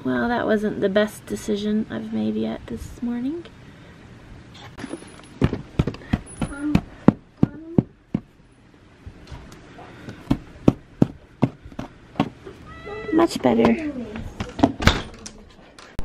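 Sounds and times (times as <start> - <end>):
rubber boots knocking: 5.4 - 8.3, 10.1 - 12.4.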